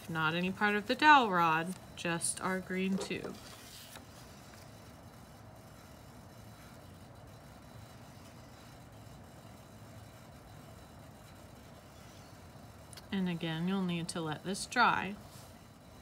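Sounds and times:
faint low room hum: 0.0s - 16.0s.

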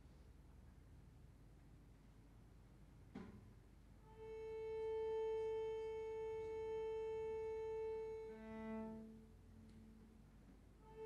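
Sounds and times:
faint knock: 3.1s - 3.4s
cello bowed note: 4.1s - 10.0s.

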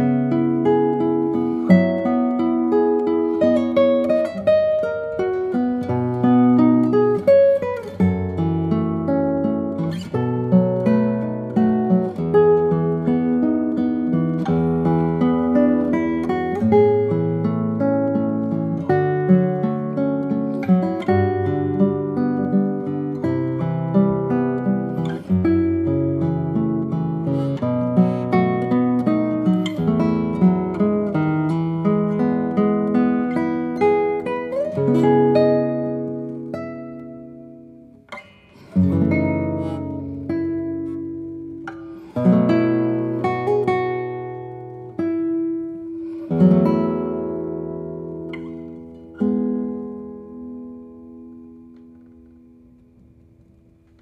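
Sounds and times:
classical guitar fingerstyle: 0.0s - 54.0s.

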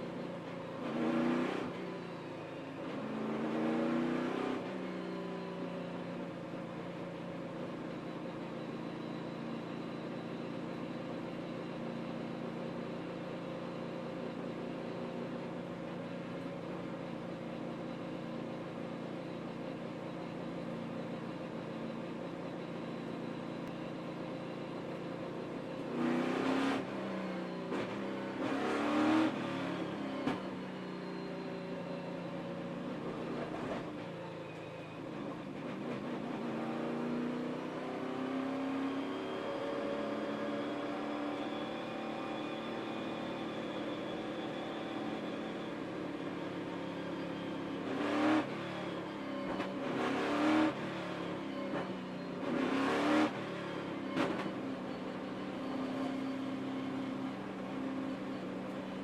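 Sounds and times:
race car engines droning: 0.0s - 59.0s.

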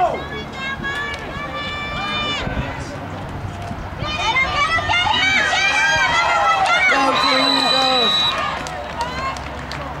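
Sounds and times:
crowd shouting and cheering: 0.0s - 10.0s
referee's whistle blowing: 6.8s - 8.5s.

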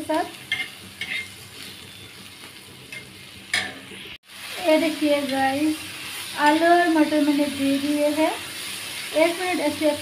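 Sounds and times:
onions sizzling in oil: 0.0s - 10.0s
spatula scraping pan: 0.4s - 2.0s.

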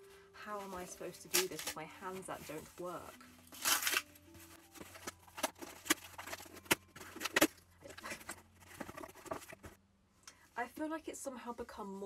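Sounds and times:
shrink-wrap crinkling and tearing: 0.8s - 9.6s.

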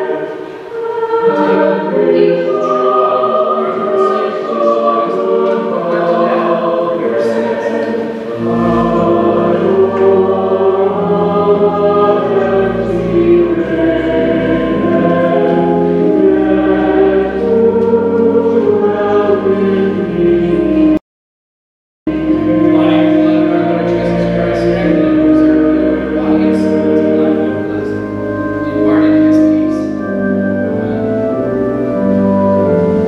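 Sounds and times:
choir singing a hymn: 0.0s - 21.0s, 22.1s - 33.0s
low sustained bass notes: 1.3s - 20.9s, 22.1s - 33.0s.

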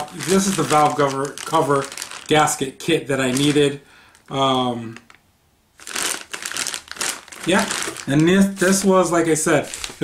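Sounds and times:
plastic bag crinkling: 0.0s - 5.2s, 5.8s - 10.0s.

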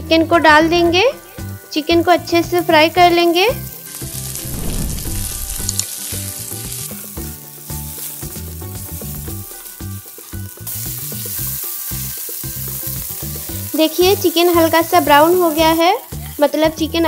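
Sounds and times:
chicken sizzling in hot oil: 1.0s - 17.0s.

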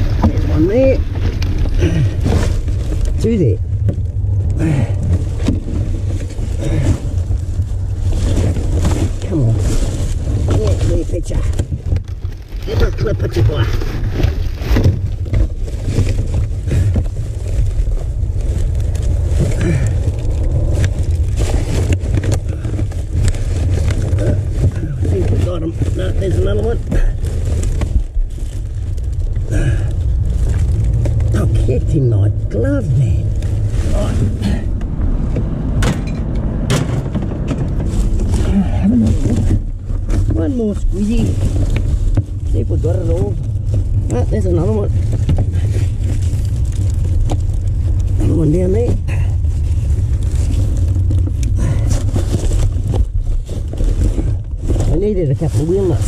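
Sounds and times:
rubbish rustling and crinkling: 0.0s - 56.0s.

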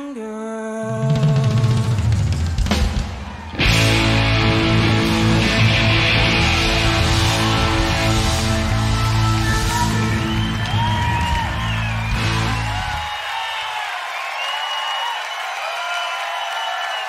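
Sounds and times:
crowd cheering and whistling: 2.1s - 17.0s
live band final chord: 3.6s - 12.8s.

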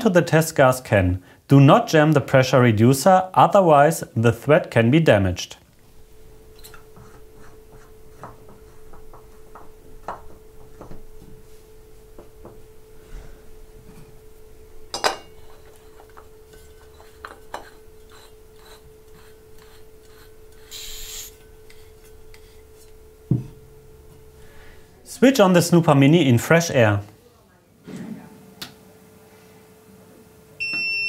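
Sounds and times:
faint hum: 0.0s - 31.0s
gas hiss: 20.6s - 21.4s.

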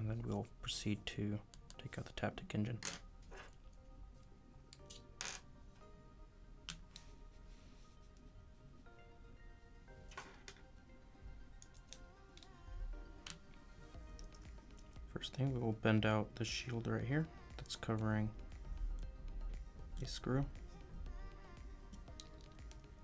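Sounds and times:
quiet music with held tones: 0.0s - 23.0s.

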